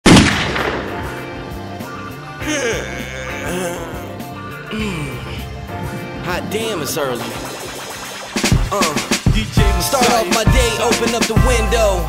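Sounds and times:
loud bang: 0.0 - 1.2
hip-hop beat: 0.7 - 12.0.

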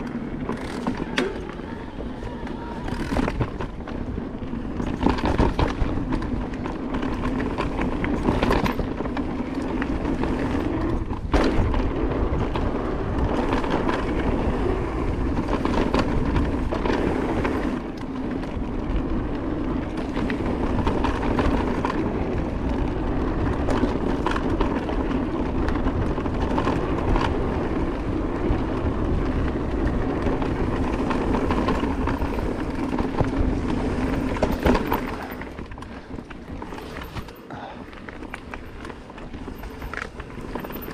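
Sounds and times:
bike knocking and rattling: 0.0 - 40.9
knobby tyres rolling on dirt: 0.0 - 40.9.

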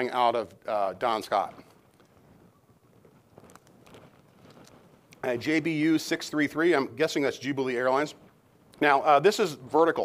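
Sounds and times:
faint handling clicks and rustles: 1.4 - 5.2.

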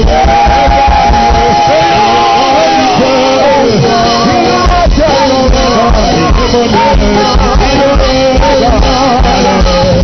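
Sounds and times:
people singing: 0.0 - 10.0
steady low drum beat: 0.0 - 10.0.

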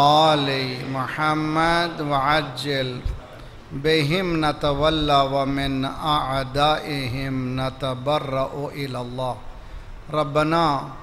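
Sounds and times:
man chanting recitation: 0.0 - 9.4, 10.1 - 11.0.

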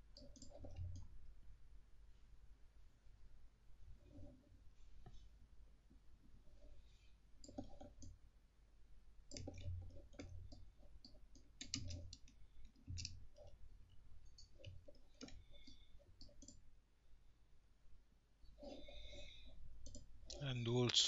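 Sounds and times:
mouse and keyboard clicks: 0.2 - 1.0, 7.4 - 8.2, 9.3 - 10.3.

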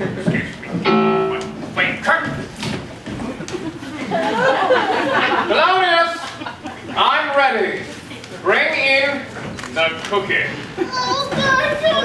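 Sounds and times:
children speaking on stage: 10.5 - 12.0.

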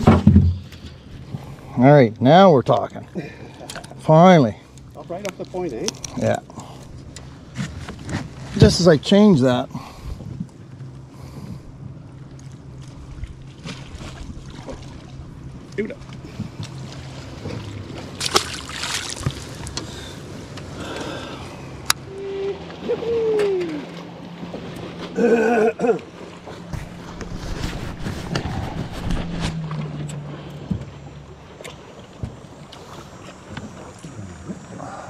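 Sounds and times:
boat motor humming: 0.0 - 35.0.

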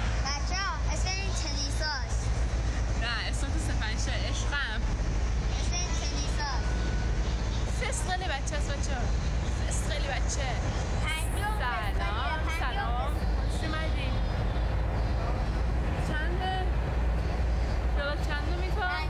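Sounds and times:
girl talking: 5.5 - 6.7, 11.0 - 13.2, 18.5 - 19.0.

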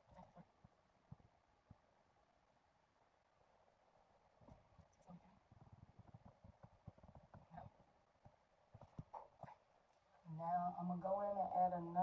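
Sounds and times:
faint brush clicks and taps: 0.2 - 1.9, 4.4 - 10.2.

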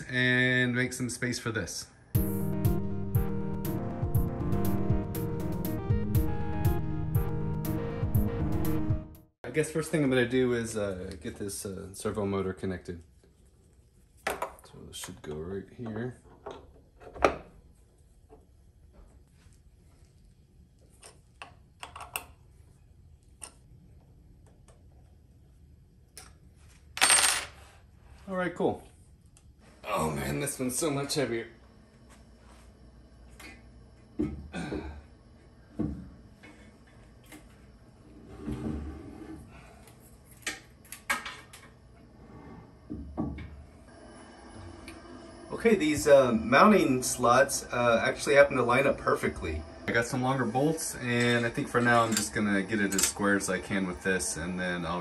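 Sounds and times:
metal clunks and scrapes: 38.2 - 39.5.

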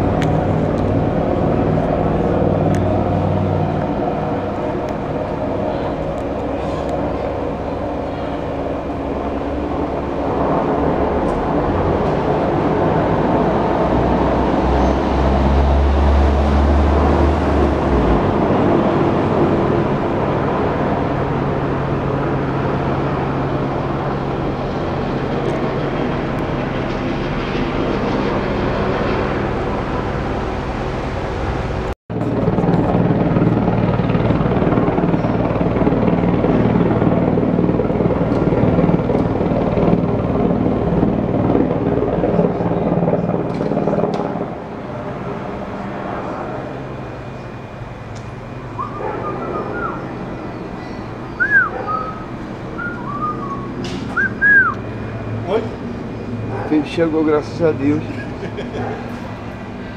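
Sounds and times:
helicopter rotor and engine: 0.0 - 59.9.

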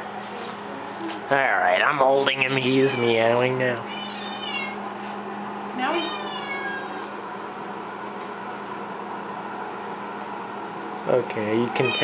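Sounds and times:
cat meowing: 2.2 - 3.3, 3.9 - 4.8, 5.9 - 7.1, 11.8 - 12.0.

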